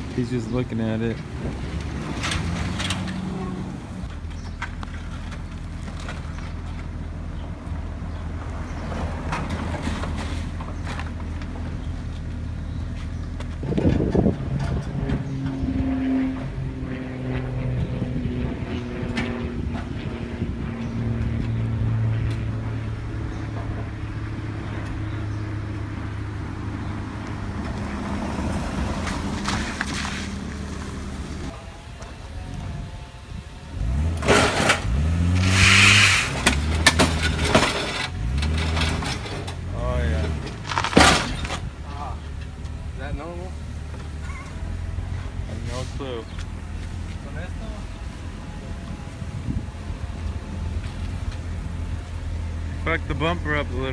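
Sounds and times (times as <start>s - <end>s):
car engine revving: 33.6s - 41.4s.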